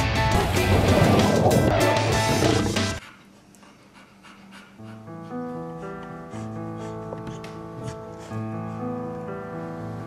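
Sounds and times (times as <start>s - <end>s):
music: 0.0s - 3.0s, 4.8s - 10.0s
dog panting softly: 3.0s - 9.1s.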